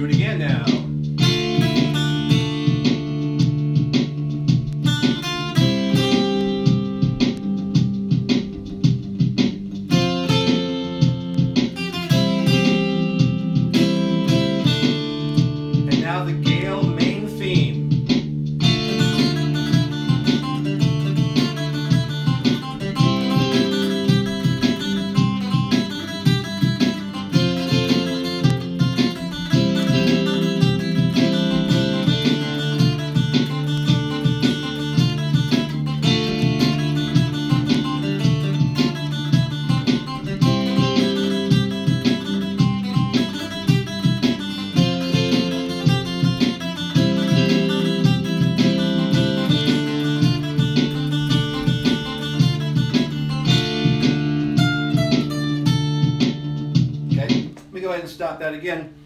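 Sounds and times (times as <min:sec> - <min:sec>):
looped bass line and chords: 0:00.0 - 0:59.0
mountain dulcimer plucked melody: 0:18.6 - 0:56.3.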